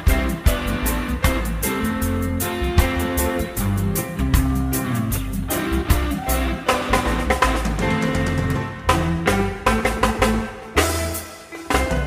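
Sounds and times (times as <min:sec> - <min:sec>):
bass line: 0:00.0 - 0:12.0
drum kit: 0:00.0 - 0:12.0
rhythmic guitar strums: 0:00.0 - 0:12.0.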